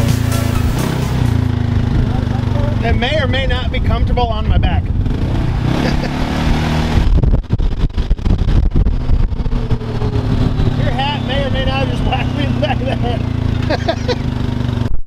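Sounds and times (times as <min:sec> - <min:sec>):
buffeting noise: 0:00.0 - 0:15.0
vehicle engine running: 0:00.0 - 0:15.0.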